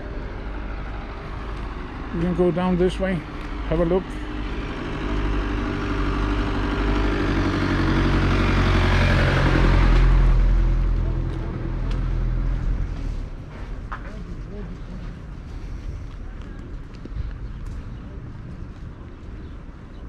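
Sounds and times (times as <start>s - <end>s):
vehicle engine running close by: 0.0s - 19.9s.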